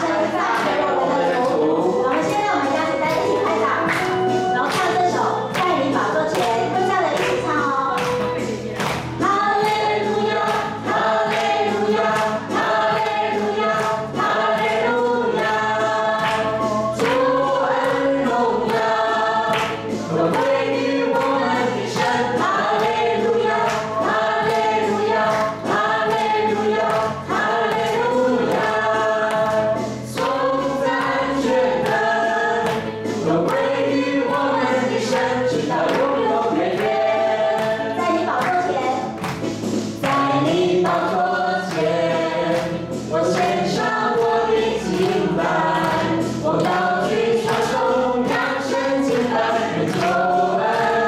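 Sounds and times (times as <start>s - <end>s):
group singing praise song: 0.0s - 51.0s
keyboard accompaniment: 0.0s - 51.0s
people clapping a beat: 0.0s - 51.0s.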